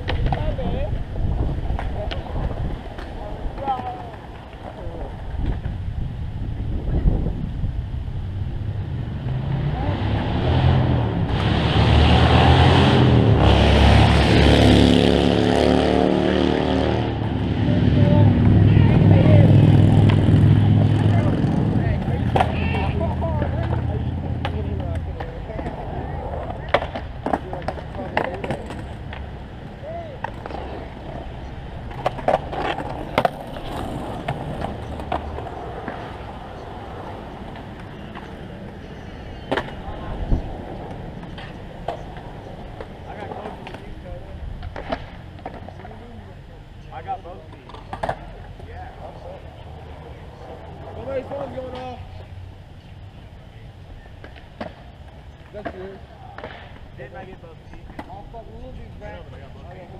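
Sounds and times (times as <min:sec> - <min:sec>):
skateboard clacks: 0:00.0 - 0:00.7, 0:01.6 - 0:05.8, 0:19.9 - 0:46.1, 0:47.4 - 0:48.7, 0:54.2 - 0:58.3
skateboard wheels rolling on concrete: 0:00.0 - 0:59.9.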